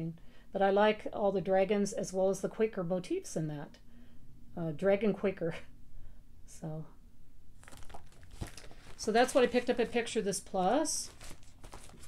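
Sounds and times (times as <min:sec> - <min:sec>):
paper rustling and crinkling: 0:07.6 - 0:12.0.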